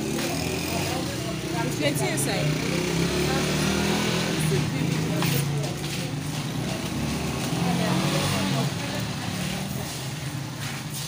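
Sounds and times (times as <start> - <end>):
background voices: 0.0 - 11.0.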